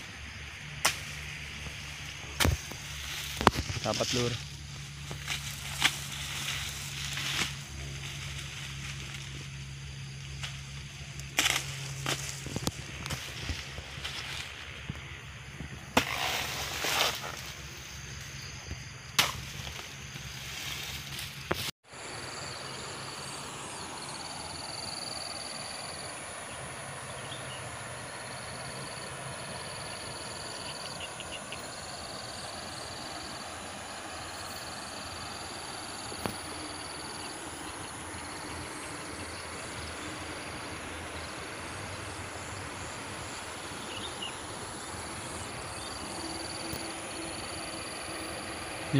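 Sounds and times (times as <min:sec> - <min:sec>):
insects shrilling: 0:00.0 - 0:48.9.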